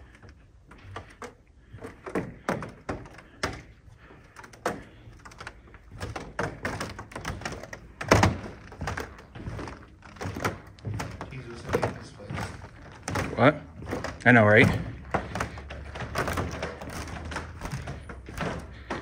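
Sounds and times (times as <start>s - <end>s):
low talking: 10.9s - 15.4s.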